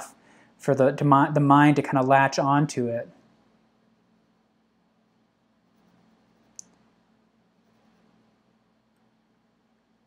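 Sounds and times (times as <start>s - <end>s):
faint room tone hum: 0.0s - 10.0s.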